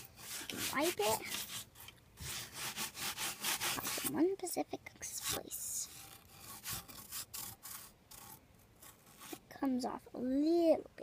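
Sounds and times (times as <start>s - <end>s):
scraping on rough rock: 0.0s - 4.3s, 5.0s - 9.6s.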